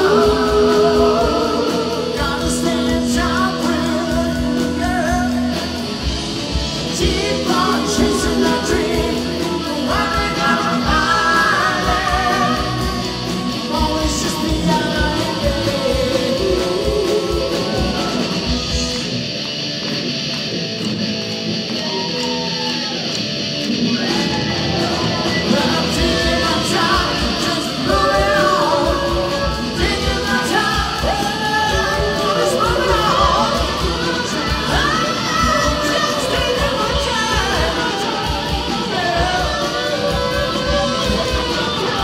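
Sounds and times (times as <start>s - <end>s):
electric guitars: 0.0s - 42.0s
live rock band: 0.0s - 42.0s.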